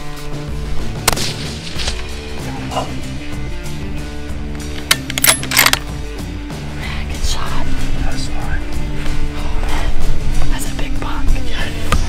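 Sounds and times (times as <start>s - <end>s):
background music: 0.0s - 12.0s
sharp cracks: 1.0s - 2.2s, 4.6s - 5.9s.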